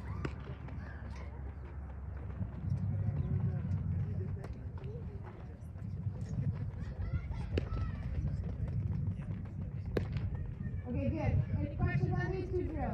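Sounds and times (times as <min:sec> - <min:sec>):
faint voices of players: 0:00.0 - 0:12.9
steady low rumble: 0:00.0 - 0:12.9
softballs smacking into gloves: 0:09.8 - 0:10.4.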